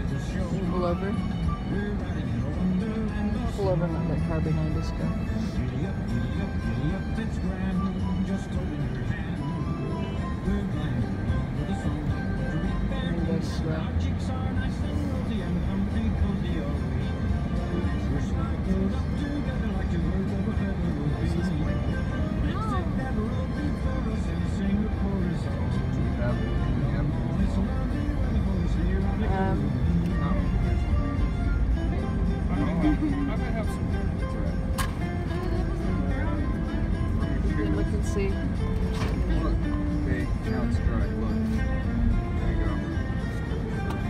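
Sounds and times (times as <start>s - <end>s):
car road noise: 0.0s - 44.0s
holiday music on car radio: 0.0s - 44.0s.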